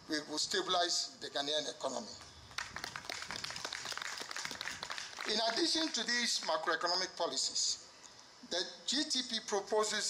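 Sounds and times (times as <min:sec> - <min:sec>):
audience applause: 0:02.6 - 0:06.2.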